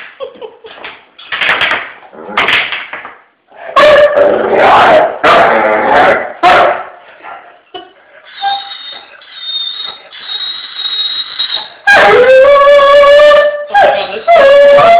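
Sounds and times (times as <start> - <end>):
dog barking: 6.4 - 7.0
dog whining: 8.2 - 14.9
dog howling: 11.9 - 14.9.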